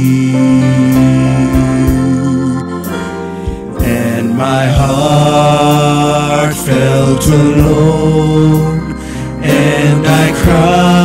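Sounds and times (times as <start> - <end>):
male trio singing in harmony: 0.0 - 3.0, 3.7 - 11.0.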